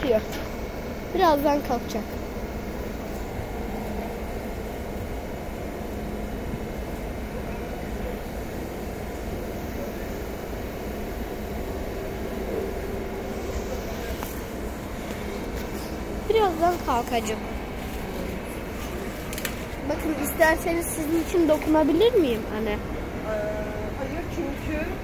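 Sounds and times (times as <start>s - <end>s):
stationary train humming: 0.0s - 25.0s.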